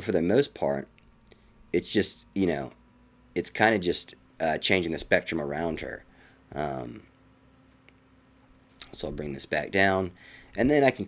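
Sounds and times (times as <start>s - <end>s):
man speaking: 0.0s - 0.9s, 1.8s - 2.8s, 3.4s - 7.1s, 8.8s - 11.0s
low steady hum: 0.0s - 11.0s.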